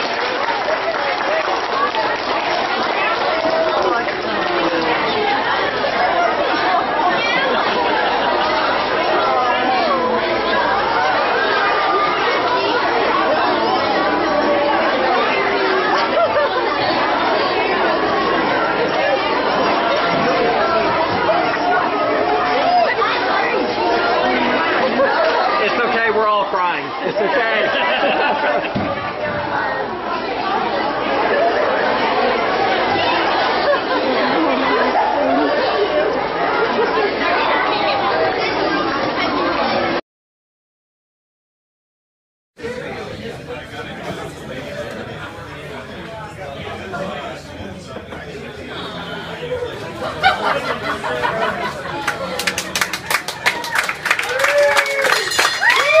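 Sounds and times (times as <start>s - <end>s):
hubbub of overlapping voices: 0.0s - 40.0s, 42.6s - 56.0s.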